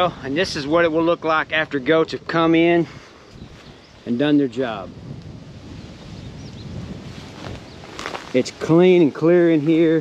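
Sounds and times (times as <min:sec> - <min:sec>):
wind on microphone: 0:00.0 - 0:10.0
faint high bird chirps: 0:05.8 - 0:07.9.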